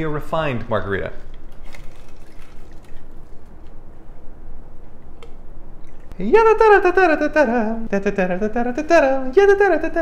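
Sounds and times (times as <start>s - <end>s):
faint trickle of liquid: 1.7s - 3.4s.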